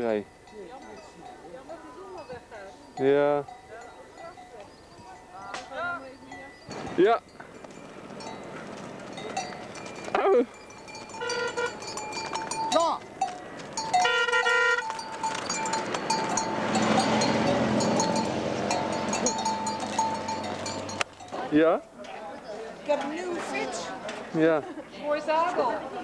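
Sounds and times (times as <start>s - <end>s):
bell clanking: 0.0s - 21.6s
cattle walking on paved road: 0.0s - 26.0s.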